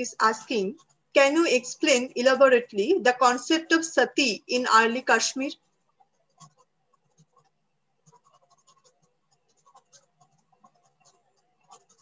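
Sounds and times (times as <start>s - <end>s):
faint small clicks and scratches: 0.0s - 1.3s, 5.6s - 12.0s.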